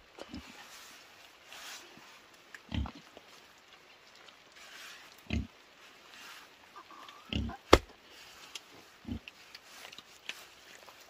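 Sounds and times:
stones thudding into wet mud: 7.7 - 8.0.

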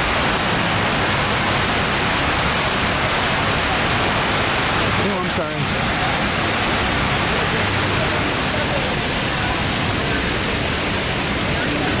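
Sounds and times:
water pouring down walls: 0.0 - 12.0
faint crowd voices: 3.5 - 12.0.

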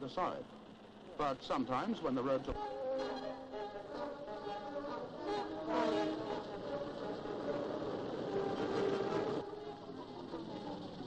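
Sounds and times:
faint background music: 0.0 - 11.0
old car engine chugging: 0.0 - 11.0.

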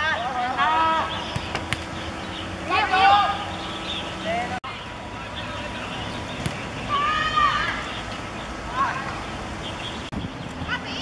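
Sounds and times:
faint distant calls: 0.0 - 11.0.

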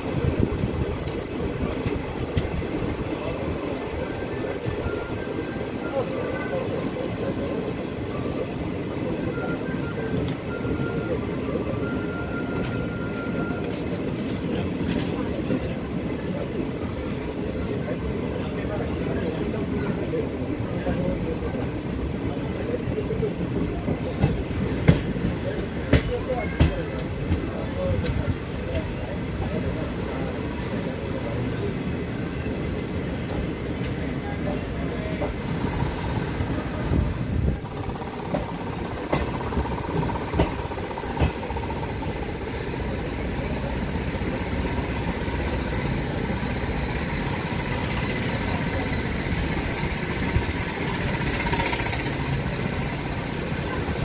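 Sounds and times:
train wheel rumble: 0.0 - 54.0
wheels clicking over rail joints: 0.1 - 3.6, 33.3 - 54.0.

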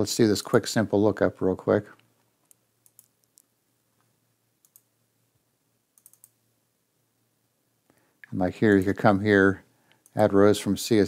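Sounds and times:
computer mouse clicks: 2.0 - 3.5, 4.6 - 4.9, 6.0 - 6.4.

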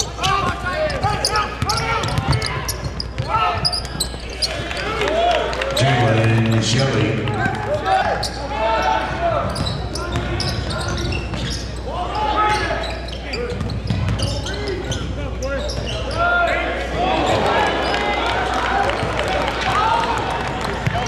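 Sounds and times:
basketball dribbling: 0.0 - 4.6
sneakers squeaking: 0.0 - 5.1, 5.7 - 19.4.

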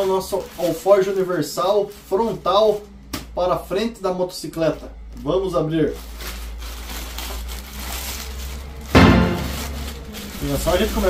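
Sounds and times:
plastic mailer bag tearing: 0.0 - 2.8, 5.9 - 11.0.

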